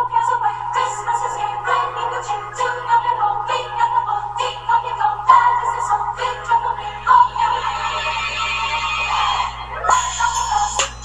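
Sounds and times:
electronic background music: 0.0 - 11.0.

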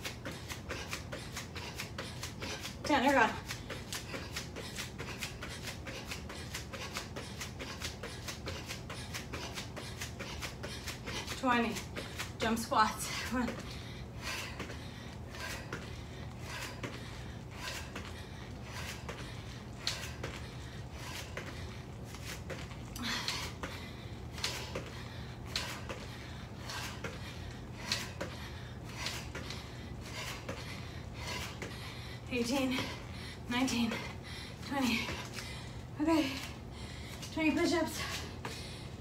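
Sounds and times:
sharp breaths and panting: 0.0 - 39.0.

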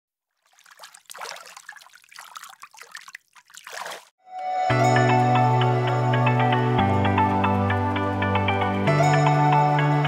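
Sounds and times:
water trickling and splashing: 0.2 - 4.2.

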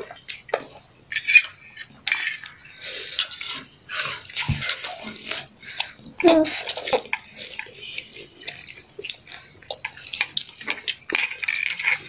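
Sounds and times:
child slurping and chewing noodles: 0.0 - 12.0.

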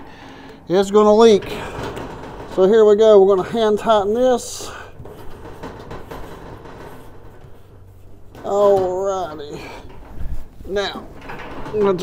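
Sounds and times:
faint handling noise: 0.0 - 12.0
steady low hum: 0.0 - 12.0.

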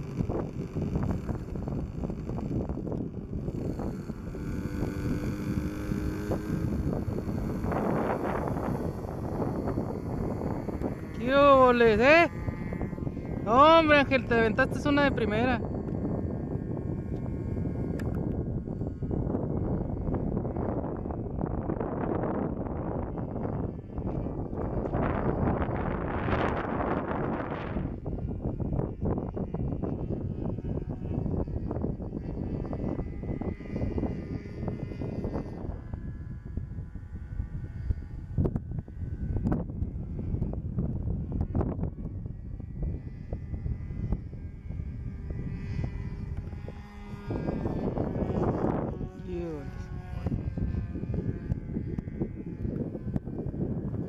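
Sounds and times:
model airplane engine buzz: 0.0 - 54.0
wind rumble on microphone: 0.0 - 54.0.

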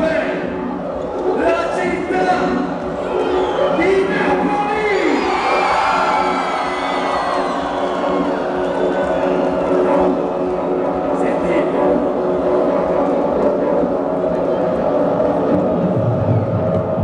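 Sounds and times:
man speaking over a microphone: 0.0 - 0.6, 1.2 - 2.8, 3.6 - 5.2, 11.2 - 11.9
club dance music: 0.0 - 17.0
crowd noise: 0.0 - 17.0.

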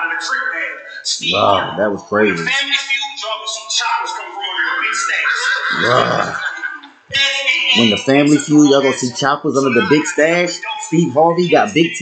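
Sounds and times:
people speaking: 0.0 - 12.0.

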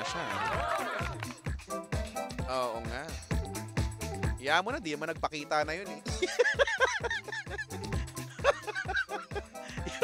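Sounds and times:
background music: 0.0 - 10.0
man laughing heartily: 6.1 - 10.0.

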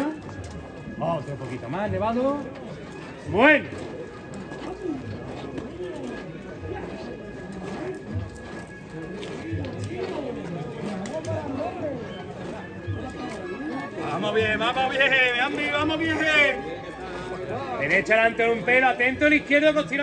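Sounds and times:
indistinct voices talking: 0.0 - 20.0.

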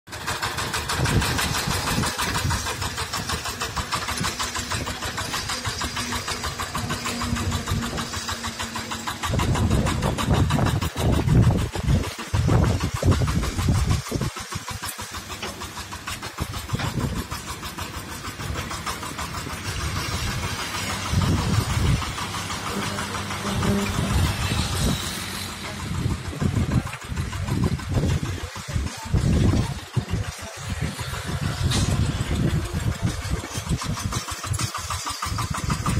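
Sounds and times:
tiller diesel engine chugging: 0.1 - 35.9.

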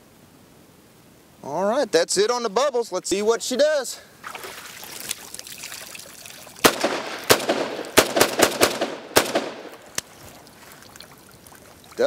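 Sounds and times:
rifle shots with echo: 6.6 - 9.8.

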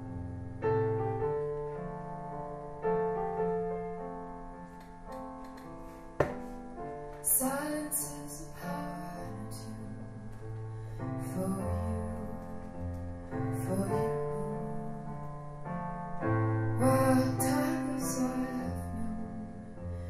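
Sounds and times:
piano chords: 0.0 - 20.0
woman singing: 7.2 - 10.4, 11.2 - 12.8, 13.5 - 15.2, 16.8 - 19.8.

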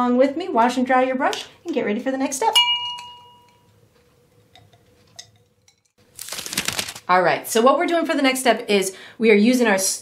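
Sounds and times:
glass clink ringing: 2.6 - 3.8.

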